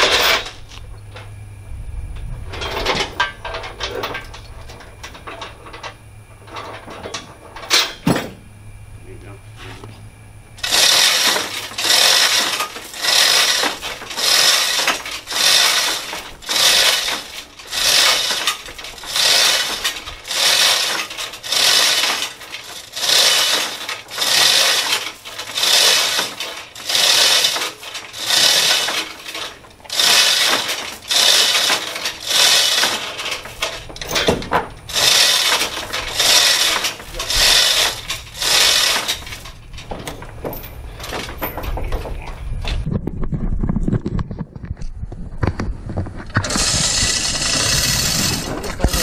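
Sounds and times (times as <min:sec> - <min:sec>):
hoist chain rattling and clinking: 0:00.0 - 0:01.3, 0:02.2 - 0:08.4, 0:10.6 - 0:42.8, 0:46.3 - 0:49.0.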